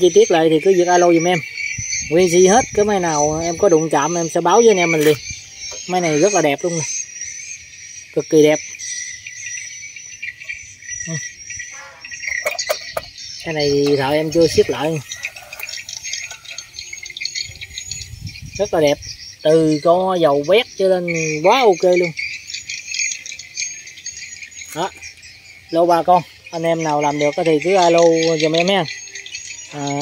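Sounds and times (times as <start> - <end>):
crickets chirping: 0.0 - 30.0.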